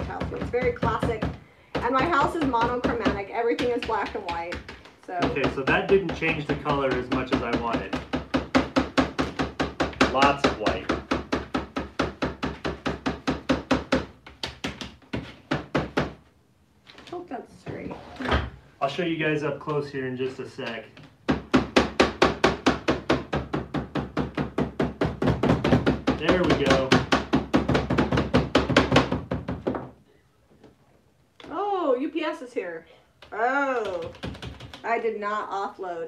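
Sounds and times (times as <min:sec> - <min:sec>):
stencil brushes tapping on wood: 0:00.0 - 0:16.2, 0:20.6 - 0:29.8.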